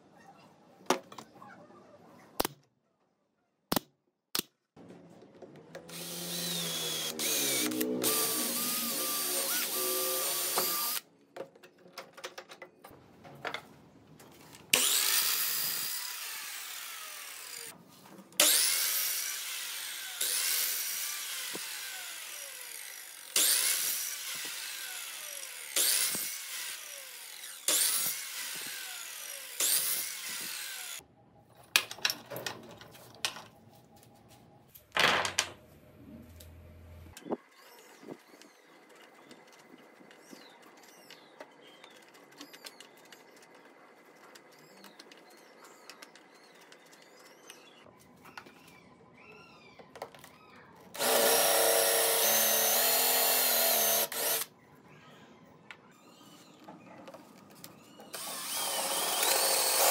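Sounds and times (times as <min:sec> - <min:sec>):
miter saw cutting wood: 0:05.8 - 0:11.0, 0:14.8 - 0:17.7, 0:18.4 - 0:31.0, 0:51.0 - 0:54.5, 0:58.1 - 0:59.9
saw blade winding down: 0:05.8 - 0:11.0, 0:14.8 - 0:17.7, 0:18.4 - 0:31.0, 0:51.0 - 0:54.5, 0:58.1 - 0:59.9
power tool running steadily: 0:05.9 - 0:11.0, 0:14.8 - 0:17.7, 0:18.4 - 0:31.0, 0:51.0 - 0:54.5, 0:58.2 - 0:59.9.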